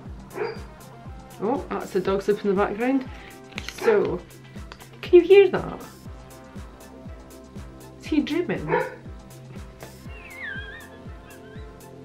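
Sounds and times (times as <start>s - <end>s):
background music with steady beat: 0.0s - 12.0s
dog whimpering: 10.0s - 12.0s.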